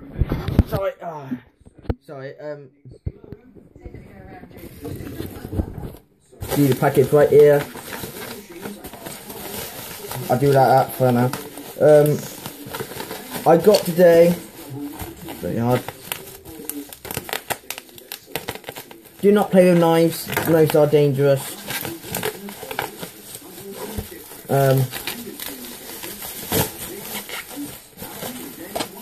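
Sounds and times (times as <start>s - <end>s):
bubble wrap crackling: 4.6s - 29.0s.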